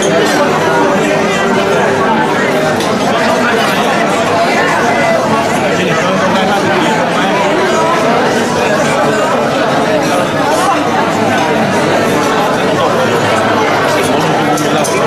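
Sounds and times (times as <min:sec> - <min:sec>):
crowd talking: 0:00.0 - 0:15.0.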